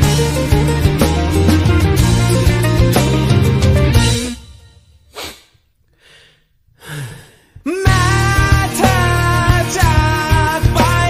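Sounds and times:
short breathy gasps: 5.2s - 7.7s.

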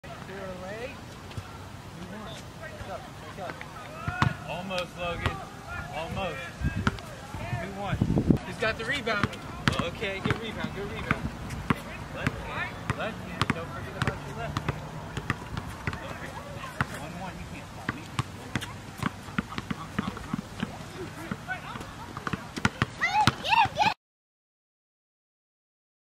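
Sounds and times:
basketball bouncing on court: 4.0s - 4.4s, 6.8s - 7.1s, 9.0s - 24.0s
high-pitched voices calling out: 20.8s - 24.0s.

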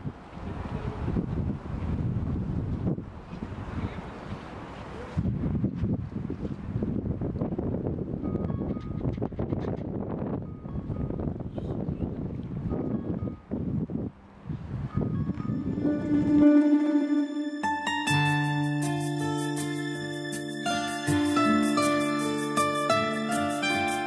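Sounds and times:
wind buffeting microphone: 0.0s - 17.1s
piano music: 15.2s - 24.0s.

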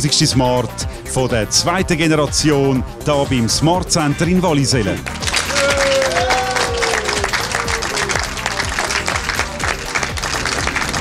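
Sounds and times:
background music with beat: 0.0s - 11.0s
people applauding: 5.0s - 11.0s.

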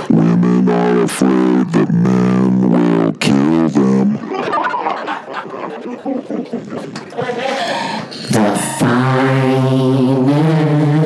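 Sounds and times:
man droning vocal tone: 0.0s - 11.0s.

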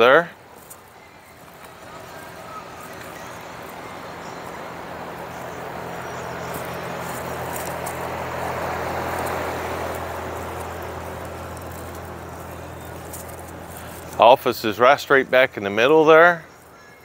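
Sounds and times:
steady low hum: 0.4s - 14.2s
passing vehicle rushing: 1.0s - 14.9s.

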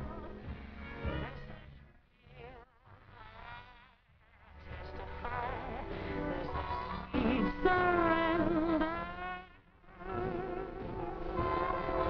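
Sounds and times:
woman singing with vibrato: 4.6s - 12.0s.

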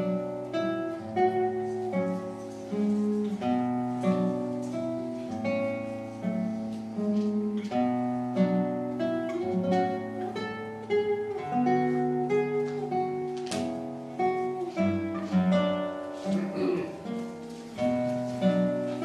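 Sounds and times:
classical guitar played solo: 0.0s - 19.0s.

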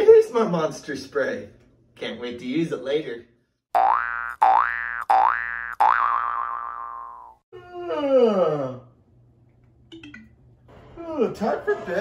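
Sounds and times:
cartoon boing: 3.8s - 7.4s.

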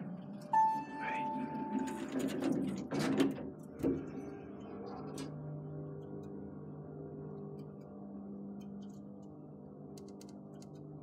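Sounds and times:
elevator machinery humming: 0.0s - 5.9s
elevator doors sliding shut: 0.6s - 4.2s.

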